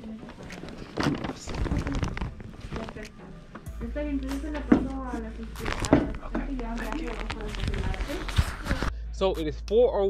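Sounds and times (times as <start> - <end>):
footsteps: 0.0 - 8.9
indistinct background voices: 0.0 - 9.6.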